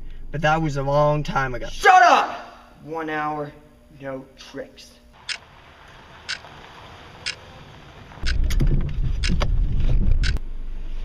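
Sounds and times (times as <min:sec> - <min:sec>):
wind rumble on microphone: 0:07.7 - 0:10.4
sharp clicks: 0:08.2 - 0:09.5, 0:10.2 - 0:10.4.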